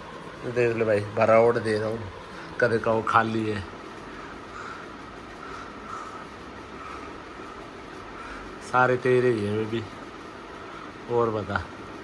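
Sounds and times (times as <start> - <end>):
faint even hum: 0.0 - 12.0.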